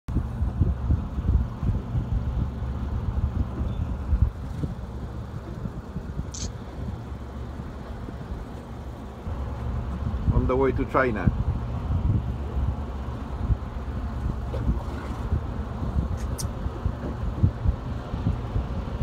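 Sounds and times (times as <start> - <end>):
low rumble: 0.1 - 19.0
wind buffeting microphone: 0.1 - 19.0.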